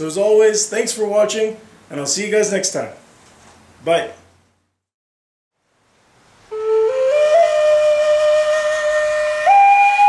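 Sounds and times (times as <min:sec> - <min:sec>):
flute playing slow melody: 0:06.5 - 0:10.0.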